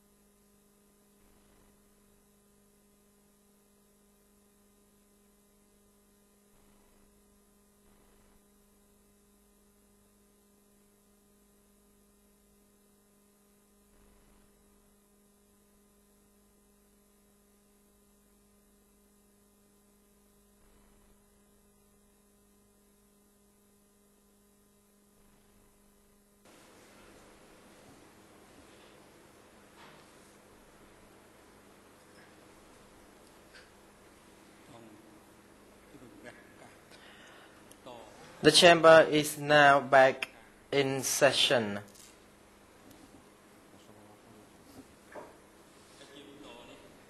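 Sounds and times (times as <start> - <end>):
low electrical hum: 0.0 - 47.0.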